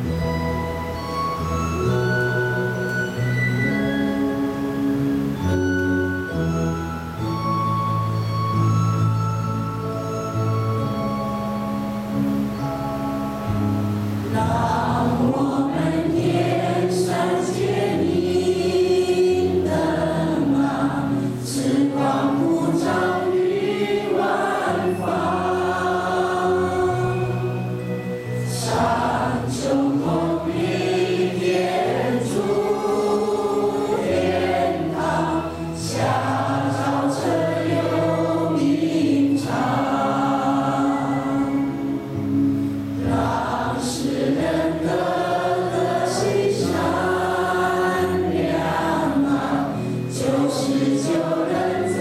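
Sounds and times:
instrumental backing: 0.0s - 52.0s
choir singing slow song: 13.4s - 52.0s.

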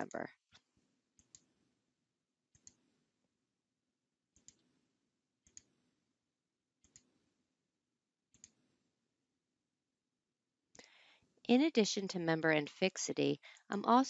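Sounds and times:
computer mouse clicking: 4.4s - 4.6s, 6.8s - 7.1s.

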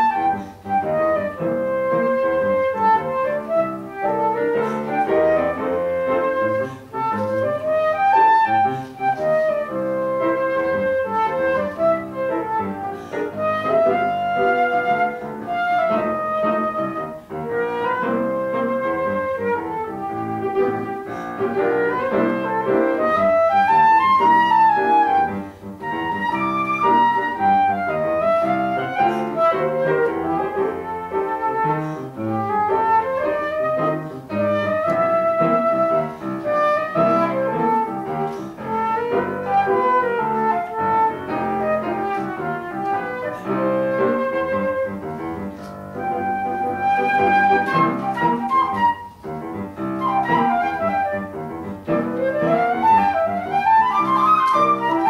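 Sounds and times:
flute melody: 0.0s - 55.0s
piano accompaniment: 0.0s - 55.0s.

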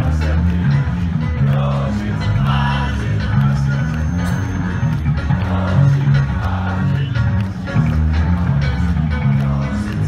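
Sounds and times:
electric bass: 0.0s - 10.0s
electric guitar: 0.0s - 10.0s.

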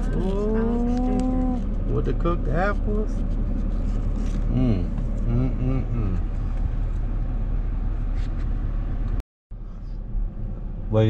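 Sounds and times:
car interior engine hum: 0.0s - 11.0s.

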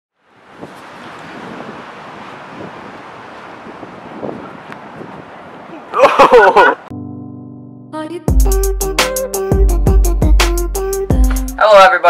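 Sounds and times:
surf washing: 0.2s - 6.9s
wind noise on microphone: 0.4s - 6.0s.

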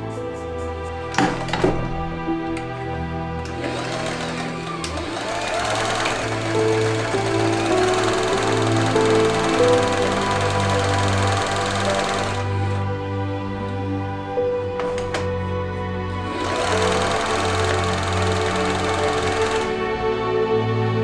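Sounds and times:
background music: 0.0s - 21.0s
sewing machine stitching: 3.4s - 12.8s, 16.2s - 19.8s.

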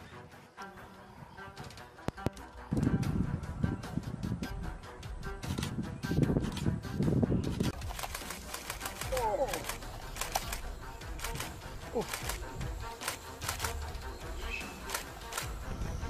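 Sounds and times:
background music: 0.0s - 16.0s
rapid sharp clicking: 7.6s - 14.0s, 14.9s - 15.6s.

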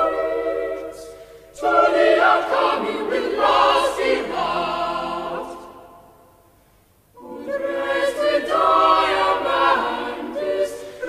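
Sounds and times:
choir singing in reverberant hall: 0.0s - 11.0s.

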